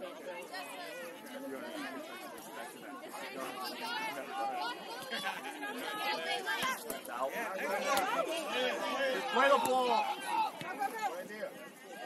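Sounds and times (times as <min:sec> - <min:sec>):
players and spectators calling out: 0:00.0 - 0:12.0.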